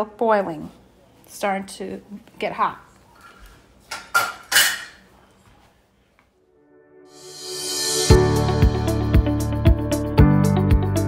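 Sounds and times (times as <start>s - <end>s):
metal pot clattering: 4.0s - 5.0s
soft background music: 6.4s - 11.0s.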